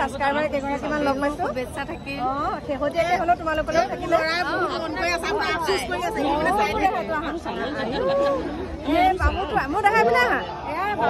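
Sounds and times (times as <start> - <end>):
group of people chatting: 0.0 - 11.0.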